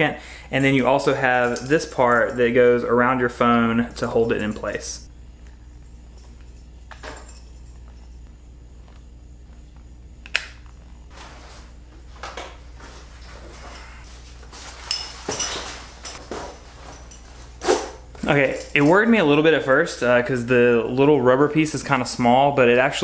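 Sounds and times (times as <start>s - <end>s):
steady low hum: 0.0s - 23.0s
knocks and shuffles: 10.8s - 19.4s.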